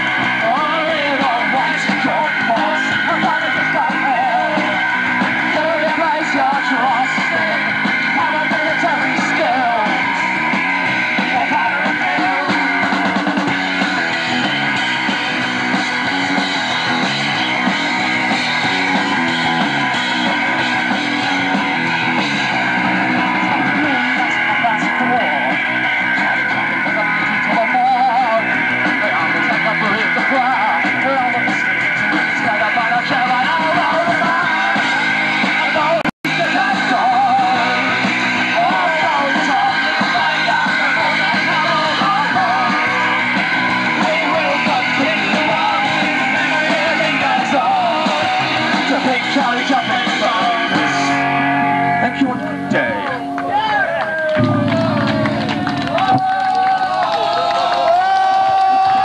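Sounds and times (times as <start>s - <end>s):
person singing: 0.0s - 10.4s, 11.2s - 13.2s, 23.1s - 53.6s
electric guitar: 0.0s - 59.0s.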